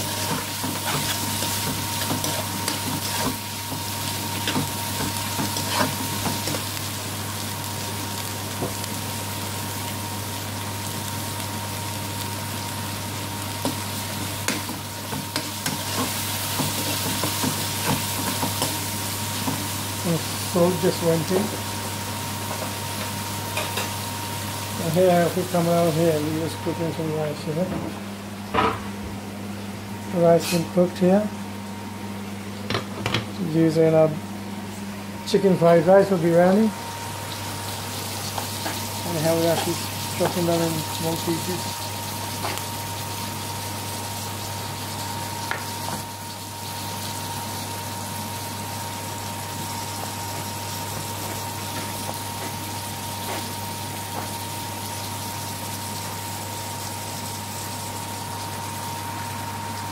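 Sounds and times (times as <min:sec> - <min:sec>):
kitchen appliance hum: 0:00.0 - 0:59.9.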